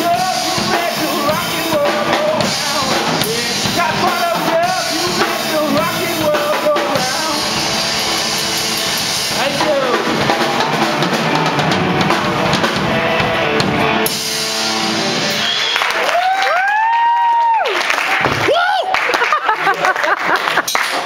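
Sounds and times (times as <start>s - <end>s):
person singing into microphone: 0.0s - 7.5s
electric guitar: 0.0s - 16.7s
bass guitar: 0.0s - 17.4s
drum kit: 0.0s - 18.8s.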